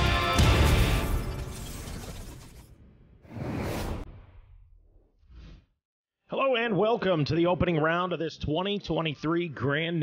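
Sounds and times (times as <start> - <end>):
shattering crash: 0.6 - 2.8
whoosh: 3.2 - 5.8.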